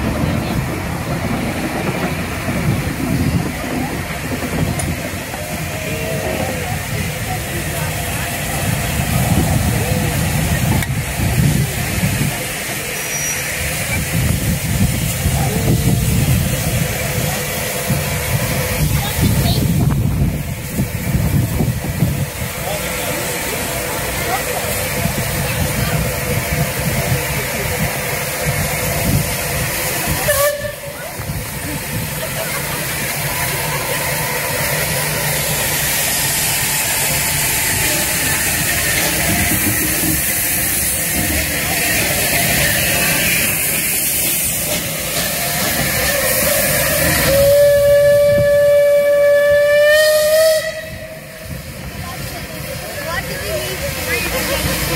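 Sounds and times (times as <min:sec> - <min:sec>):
steam locomotive hissing steam: 0:00.0 - 0:54.9
steam whistle blast: 0:30.2 - 0:31.0, 0:46.8 - 0:51.5.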